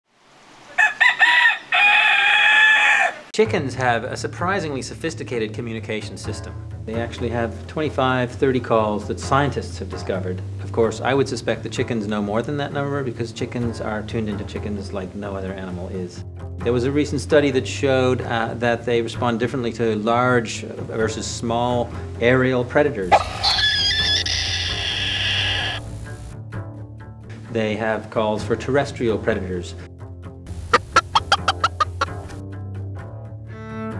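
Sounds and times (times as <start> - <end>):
chicken alarm call: 0.6 - 3.3, 23.1 - 25.8, 30.7 - 32.1
rooster crowing: 0.7 - 3.3, 23.1 - 25.8.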